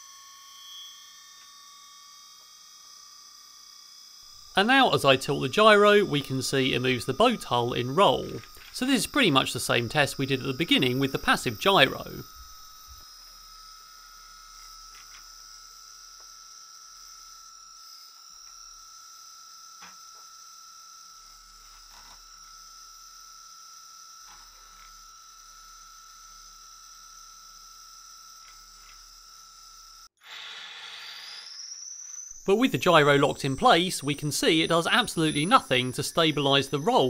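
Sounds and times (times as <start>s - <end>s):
motor high whine: 0.0s - 37.0s
whine with hiss: 3.8s - 20.6s, 21.2s - 37.0s.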